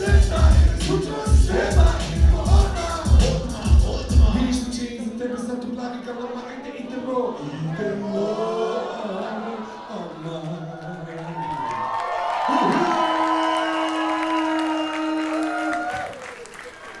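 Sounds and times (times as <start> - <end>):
crowd cheering and applauding: 10.6 - 17.0.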